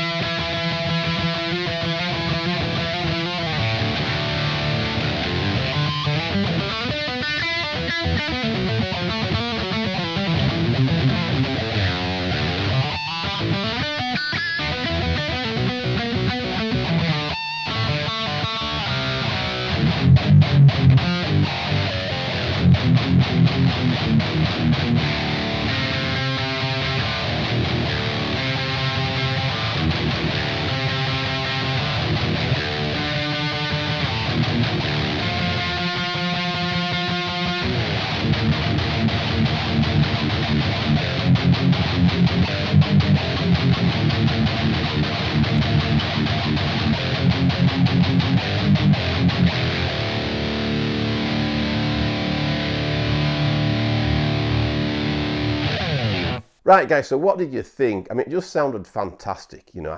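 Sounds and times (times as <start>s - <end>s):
palm-muted guitar chugs: 0.0s - 56.4s
distorted electric guitar riffs: 0.0s - 56.9s.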